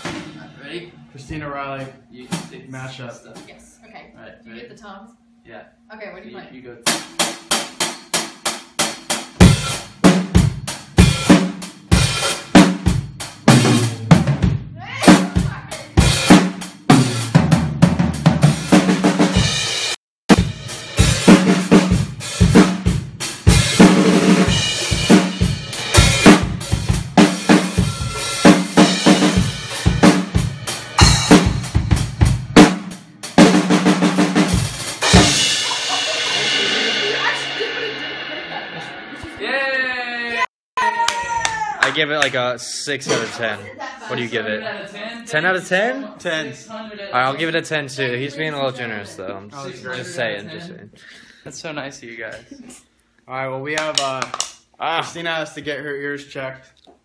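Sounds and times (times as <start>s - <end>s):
loud quick drum hits: 0.0s - 0.6s, 6.8s - 39.5s.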